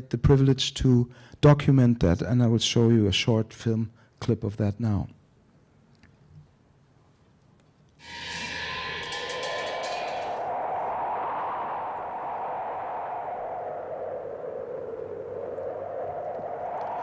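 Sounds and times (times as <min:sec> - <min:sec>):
high shimmer: 0:08.0 - 0:13.8
whooshing drone: 0:08.0 - 0:17.0.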